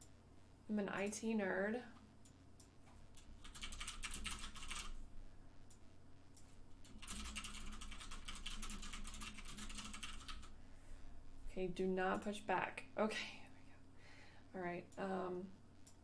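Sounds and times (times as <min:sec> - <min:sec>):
keyboard typing: 0:03.1 - 0:05.0, 0:06.8 - 0:10.5.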